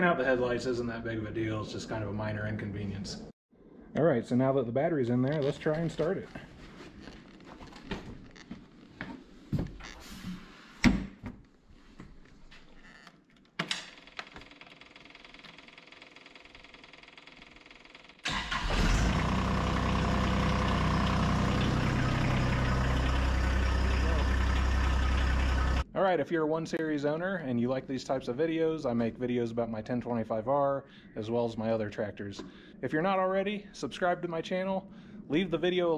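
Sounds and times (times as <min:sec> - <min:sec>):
diesel engine cranking and idling: 0:18.2 - 0:25.8.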